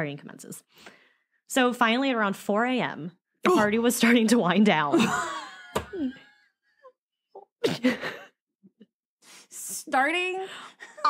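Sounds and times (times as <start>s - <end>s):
woman laughing: 4.9s - 6.5s, 7.4s - 8.4s, 10.8s - 11.0s.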